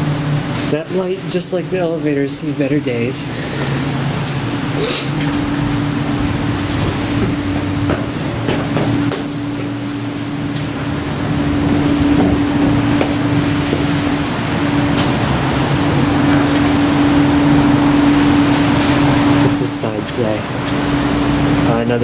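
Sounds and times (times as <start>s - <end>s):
mechanical hum: 0.0s - 22.0s
low rumble: 3.2s - 19.7s.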